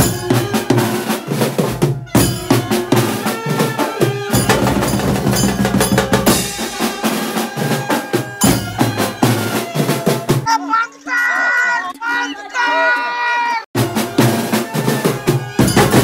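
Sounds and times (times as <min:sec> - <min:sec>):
drums and cymbal fast rhythm: 0:00.0 - 0:10.6, 0:13.8 - 0:16.0
pitched voice-like sound: 0:10.5 - 0:13.6.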